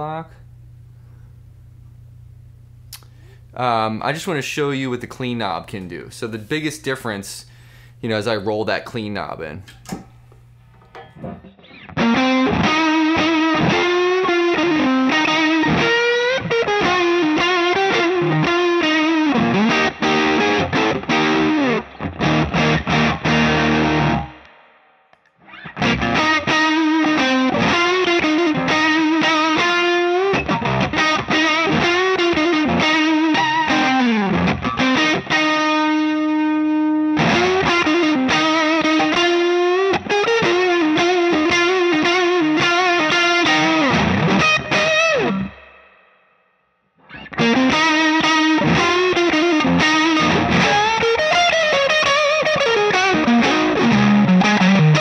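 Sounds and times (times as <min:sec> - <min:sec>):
overdriven electric guitar riffs: 0:09.7 - 0:55.0.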